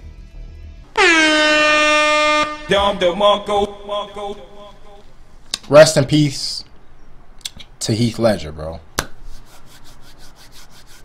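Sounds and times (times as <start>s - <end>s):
air horn blast: 0.9s - 5.0s.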